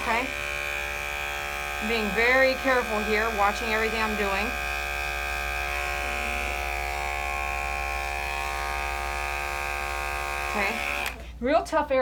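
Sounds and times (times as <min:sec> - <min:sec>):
electric clippers humming: 0:00.0 - 0:11.2.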